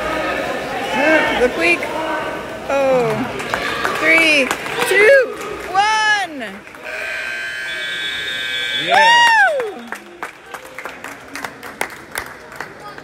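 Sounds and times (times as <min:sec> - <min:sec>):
scoreboard buzzer: 0:06.8 - 0:09.1
spectators shouting: 0:06.8 - 0:09.9.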